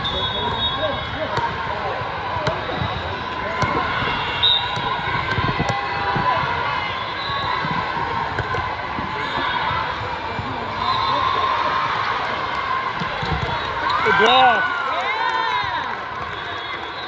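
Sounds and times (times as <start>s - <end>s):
babble of many voices: 0.0s - 17.0s
volleyballs thudding: 1.3s - 4.0s, 4.6s - 6.6s, 7.6s - 9.2s, 12.9s - 13.7s.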